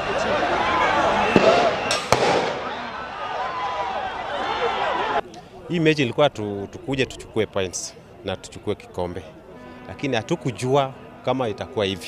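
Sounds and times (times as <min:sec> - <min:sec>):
crowd shouting: 0:00.0 - 0:05.2.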